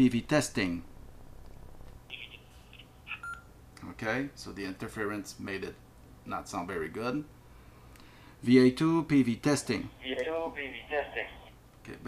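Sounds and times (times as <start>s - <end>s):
garbled digital radio transmission: 2.1s - 3.3s, 10.0s - 11.6s.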